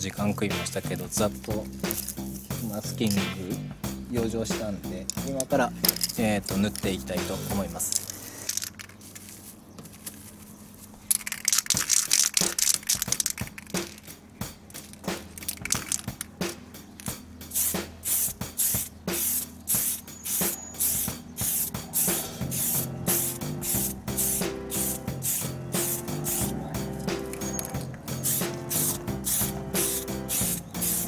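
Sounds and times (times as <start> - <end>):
aerosol spray can hissing: 17.5 - 31.0.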